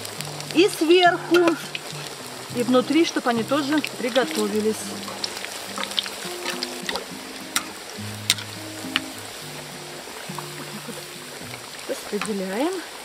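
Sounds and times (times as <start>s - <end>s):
food deep-frying in oil: 0.0s - 13.0s
soft background music: 0.4s - 11.4s.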